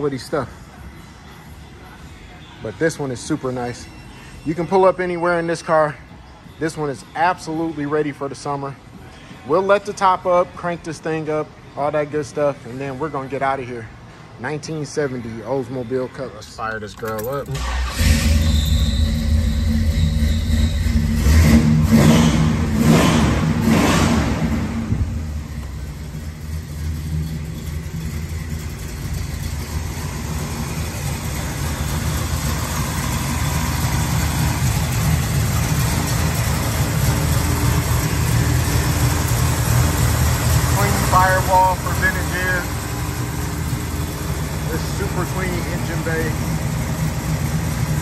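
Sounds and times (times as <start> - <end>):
car engine revving and idling: 17.2 - 48.0.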